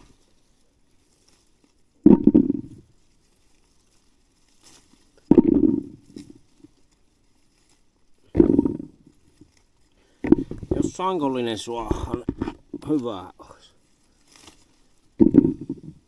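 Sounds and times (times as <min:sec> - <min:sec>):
currants pattering into bucket: 0:00.0 - 0:16.0.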